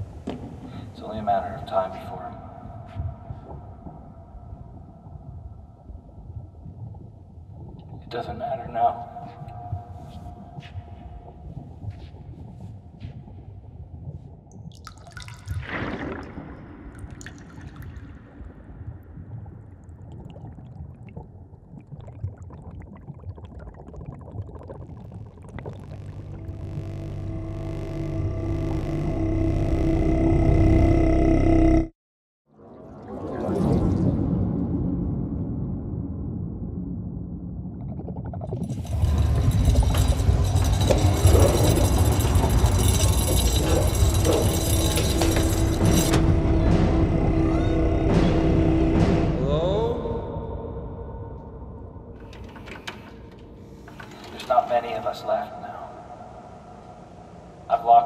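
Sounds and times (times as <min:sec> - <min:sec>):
low rumble: 0:15.6 - 0:31.9, 0:33.6 - 0:52.2
eerie horror drone: 0:25.7 - 0:31.9, 0:38.7 - 0:57.7.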